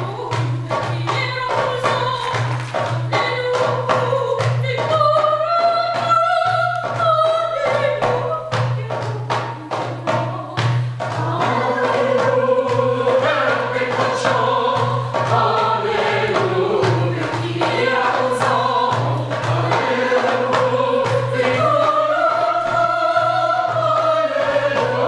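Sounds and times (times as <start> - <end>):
mixed choir singing in harmony: 11.0 - 25.0.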